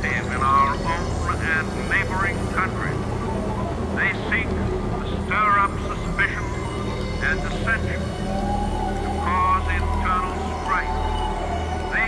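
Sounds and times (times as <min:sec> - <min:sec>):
warped voice fragments: 0:00.0 - 0:06.6
low synth drone: 0:00.0 - 0:12.0.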